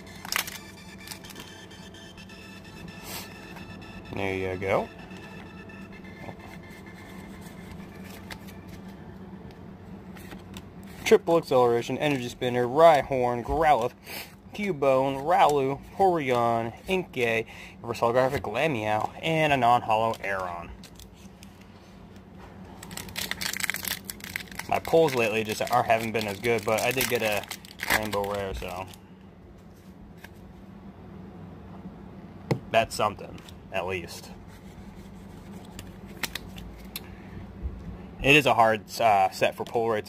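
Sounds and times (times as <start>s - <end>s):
steady low hum: 0.0s - 40.0s
cards rustling: 6.2s - 9.0s, 22.8s - 29.0s
foil wrapper crinkling: 22.8s - 29.0s.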